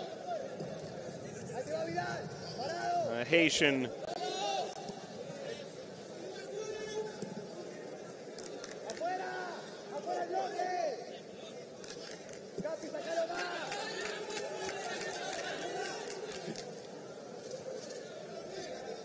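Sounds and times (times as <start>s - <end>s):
crowd murmur: 3.1s - 4.0s.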